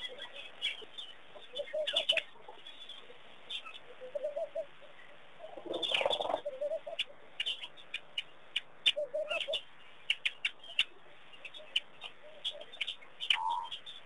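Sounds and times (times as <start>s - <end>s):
bird calling low phrases: 0.0s - 14.0s.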